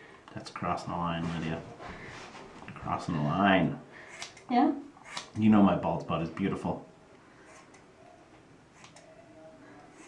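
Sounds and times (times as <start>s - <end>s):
scissors snipping hair: 4.1s - 5.4s, 8.8s - 9.1s.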